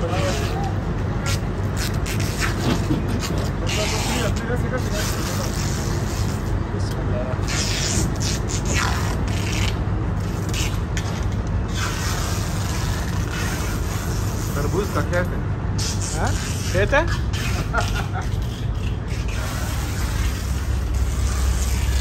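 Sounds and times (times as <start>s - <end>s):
low engine hum: 16.9s - 22.0s.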